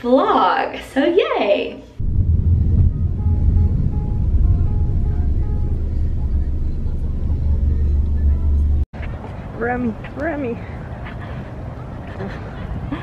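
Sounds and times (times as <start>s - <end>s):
car driving rumble inside cabin: 2.0s - 8.9s
faint music: 3.5s - 9.8s.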